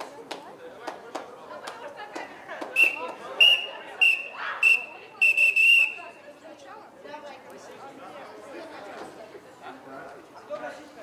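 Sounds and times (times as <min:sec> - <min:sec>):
faint voices: 0:00.0 - 0:11.0
referee's whistle blasts: 0:02.8 - 0:06.1.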